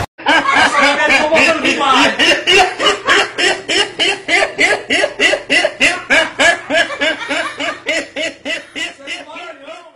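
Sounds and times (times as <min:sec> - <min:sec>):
man laughing: 0:00.2 - 0:09.9.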